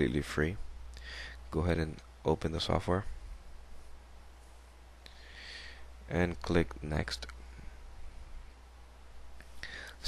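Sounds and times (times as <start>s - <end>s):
microphone hiss: 0.0s - 10.0s
short breath: 1.0s - 1.4s, 5.1s - 5.9s, 9.6s - 10.0s.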